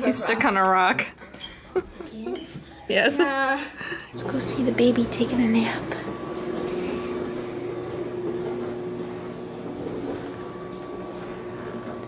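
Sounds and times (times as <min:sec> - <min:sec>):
steady machine hum: 0:03.8 - 0:12.0.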